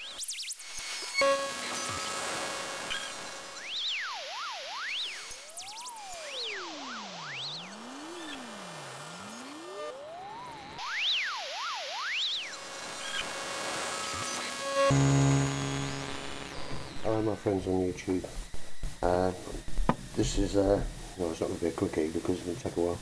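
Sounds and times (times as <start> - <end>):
electronic tones sliding in pitch: 0.0 - 17.9
steady hiss: 16.7 - 23.0.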